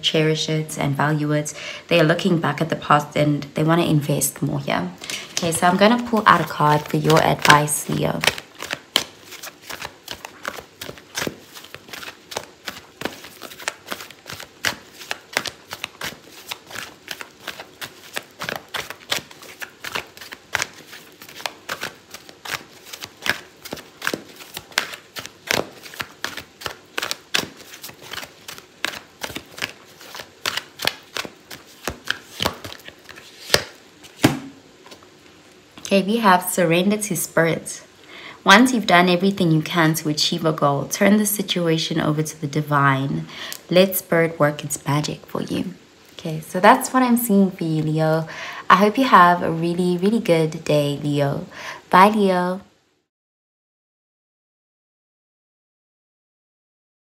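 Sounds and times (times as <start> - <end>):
cards being shuffled: 5.0 - 35.9.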